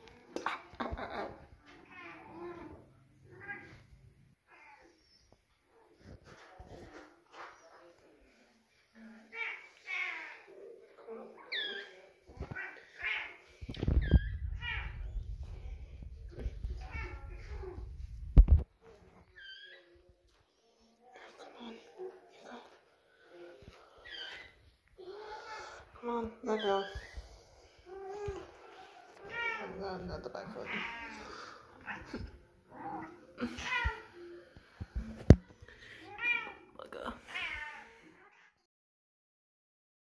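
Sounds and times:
cat meowing: 30.6s - 31.2s
faint cat meow: 36.1s - 38.6s.

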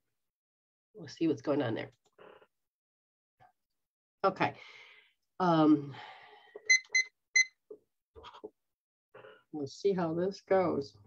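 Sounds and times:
short electronic beeps: 6.7s - 7.5s.

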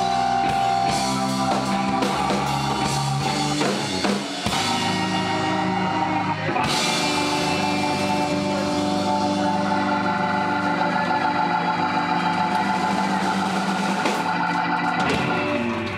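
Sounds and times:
blues band sustained chord: 0.0s - 15.9s
organ-voiced keyboard: 0.0s - 15.9s.

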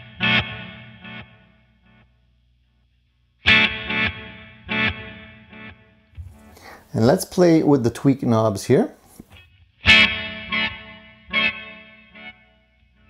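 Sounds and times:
electric guitar chords with delay: 0.0s - 2.1s, 3.4s - 6.5s, 9.7s - 13.0s.

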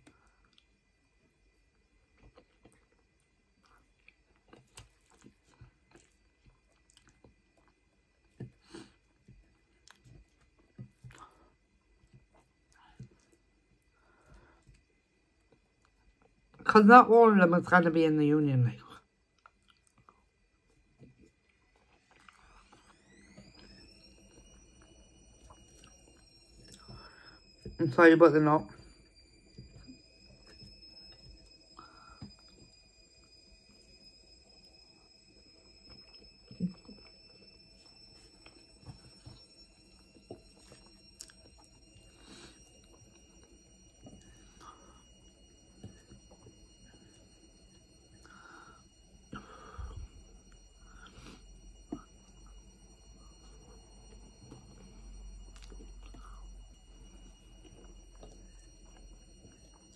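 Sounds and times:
soft chewing: 0.0s - 16.6s, 19.0s - 24.1s, 25.4s - 27.7s, 40.0s - 47.2s
faint high whine: 0.0s - 59.9s.

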